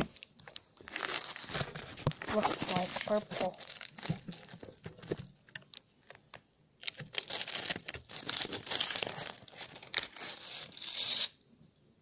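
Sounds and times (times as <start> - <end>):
plastic wrapper crinkling: 0.0 - 11.4.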